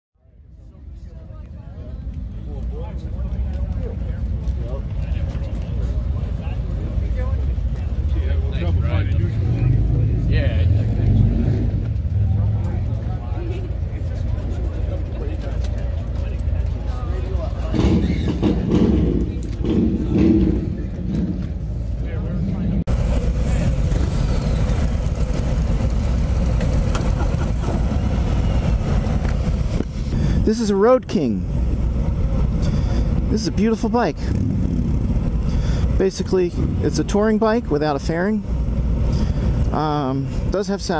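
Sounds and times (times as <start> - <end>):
voices: 0.2 - 25.9, 26.6 - 34.4, 35.2 - 40.9
motorcycles idling: 0.5 - 40.9.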